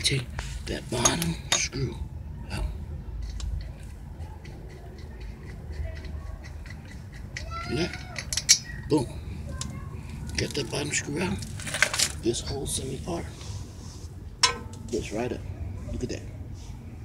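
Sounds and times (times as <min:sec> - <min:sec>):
ratchet loosening a bolt: 0:03.2 - 0:08.8.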